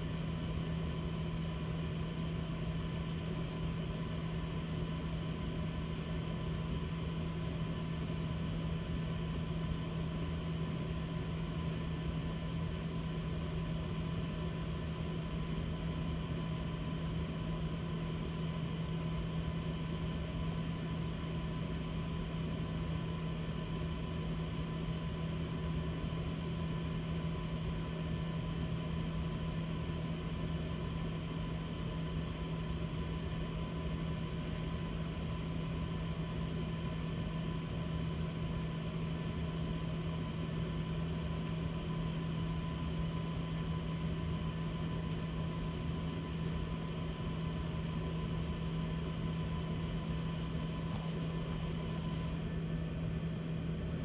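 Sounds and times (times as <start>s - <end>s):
machine hum with low drone: 0.0s - 54.0s.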